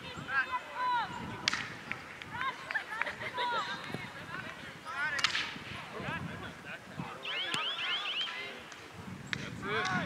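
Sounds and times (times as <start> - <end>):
people shouting and calling: 7.2 - 8.6.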